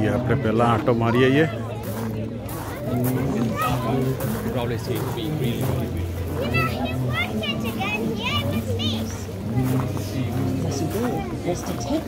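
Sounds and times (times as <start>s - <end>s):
voices: 0.0s - 12.0s
child's high-pitched voice: 6.4s - 9.2s.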